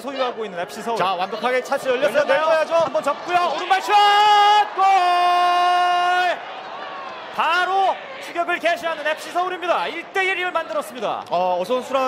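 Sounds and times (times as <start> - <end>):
stadium crowd noise: 0.0 - 12.0
man shouting goal: 1.4 - 6.4.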